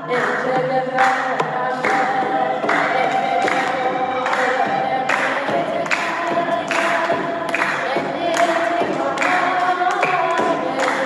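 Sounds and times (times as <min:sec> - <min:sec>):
regular beat: 0:00.0 - 0:11.0
woman singing a hymn: 0:00.0 - 0:11.0.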